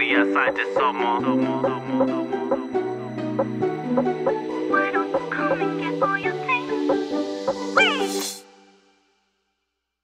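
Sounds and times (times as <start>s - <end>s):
synth chords and beat: 1.6s - 8.4s.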